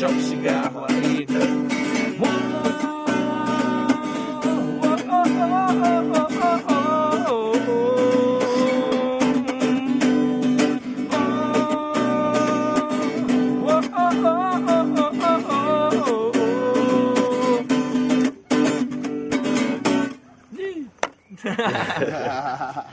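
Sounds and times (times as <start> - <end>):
man singing long notes: 0.0 - 17.9
acoustic guitar strumming: 0.0 - 20.4.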